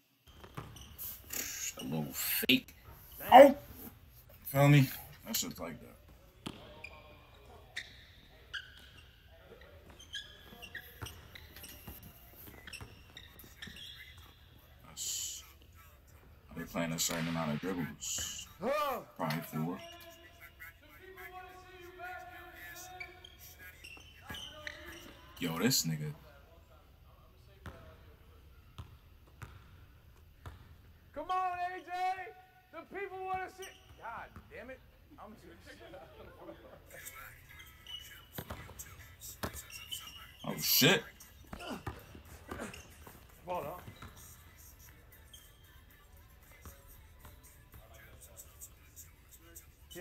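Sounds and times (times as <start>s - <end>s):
sneaker squeaks: 0.2s - 26.0s, 28.6s - 30.8s, 33.2s - 34.8s, 36.9s - 50.0s
basketball bouncing on wooden floor: 28.8s - 29.7s.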